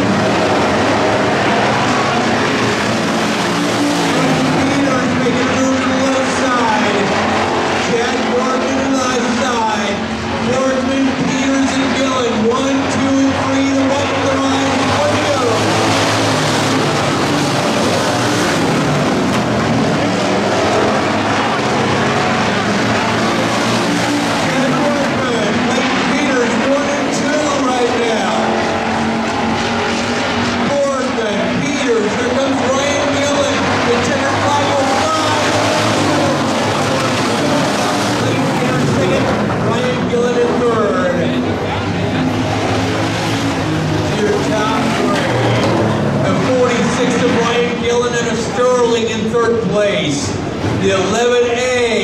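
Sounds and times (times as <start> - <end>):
race car engines: 0.0 - 52.0.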